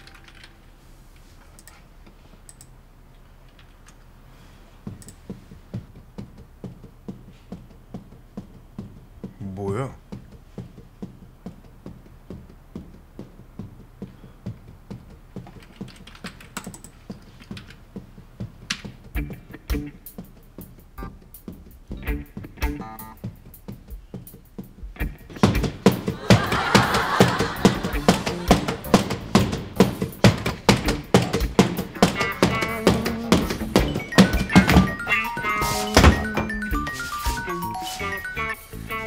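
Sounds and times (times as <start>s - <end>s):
person jumping on floor: 4.8s - 9.4s, 10.0s - 39.0s
typing on computer keyboard: 15.5s - 17.8s
regular low thud: 21.0s - 35.1s.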